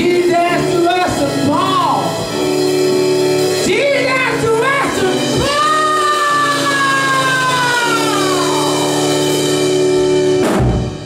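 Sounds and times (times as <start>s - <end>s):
electric guitar chords: 0.0s - 11.0s
keyboard chords: 0.0s - 11.0s
singer holding long note: 4.9s - 9.4s.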